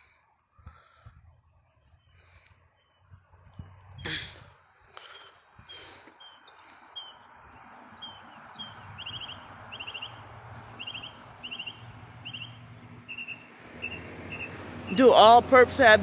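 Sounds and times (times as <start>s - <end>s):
road traffic: 0.0s - 16.0s
songbird chirping: 1.4s - 4.1s, 4.8s - 16.0s
car approaching: 6.2s - 16.0s.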